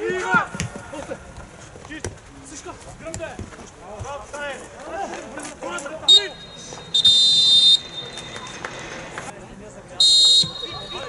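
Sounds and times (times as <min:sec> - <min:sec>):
referee's whistle blast: 0:06.1 - 0:08.4, 0:10.0 - 0:11.0.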